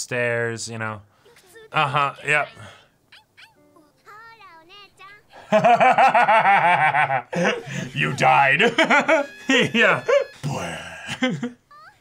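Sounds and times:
men laughing heartily: 1.8 - 2.4, 5.4 - 11.7.

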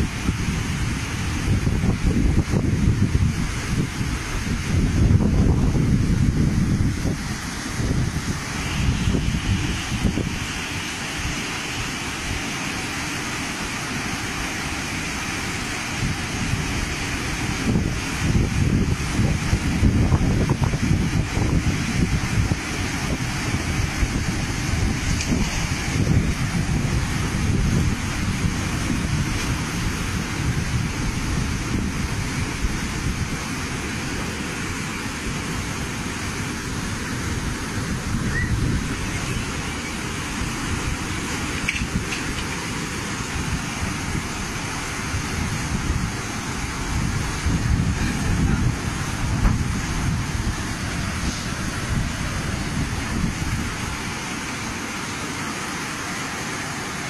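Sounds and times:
wind buffeting microphone: 0.0 - 12.6, 13.6 - 54.4
heavy rain: 0.0 - 57.0
rushing floodwater: 0.0 - 57.0.

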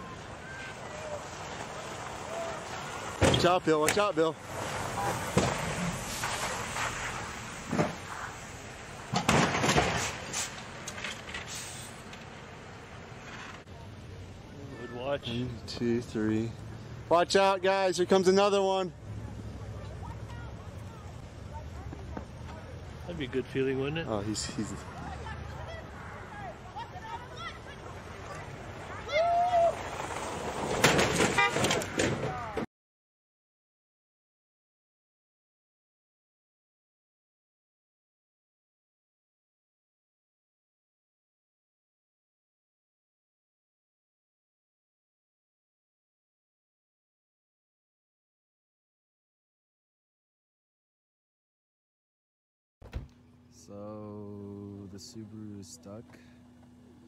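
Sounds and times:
car skidding on snow: 0.1 - 9.1, 27.7 - 32.6
car crashing into cars: 0.6 - 8.4, 9.0 - 11.6, 29.6 - 32.6
people shouting: 2.2 - 2.7, 28.9 - 29.9.

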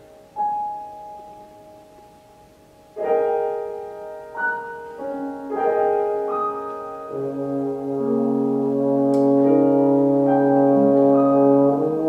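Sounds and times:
piano chord ringing: 0.0 - 12.0.

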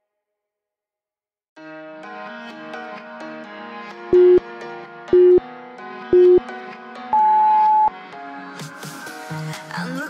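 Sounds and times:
background music: 1.6 - 10.0
timer beeps: 4.2 - 4.4, 5.1 - 5.4, 6.2 - 6.4, 7.2 - 7.9.

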